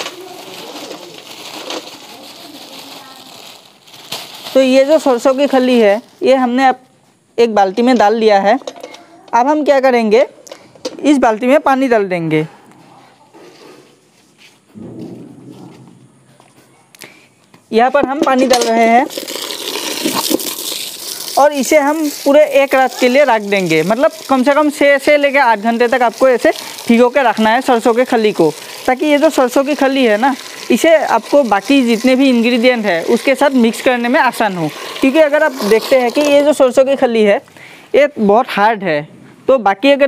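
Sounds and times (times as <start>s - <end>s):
plastic bag crinkling: 0.0s - 6.3s, 19.0s - 36.8s.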